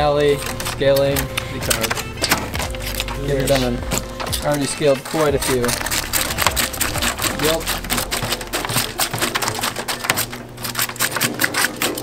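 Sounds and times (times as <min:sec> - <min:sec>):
background music: 0:00.0 - 0:12.0
knife scraping fish scales: 0:00.2 - 0:12.0.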